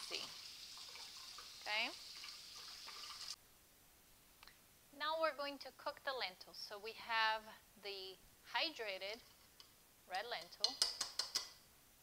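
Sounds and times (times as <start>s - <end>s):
faucet running onto strainer: 0.0s - 3.4s.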